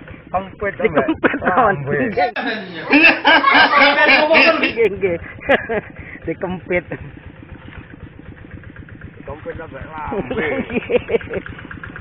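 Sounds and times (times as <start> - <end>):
small engine chugging: 0.0 - 12.0.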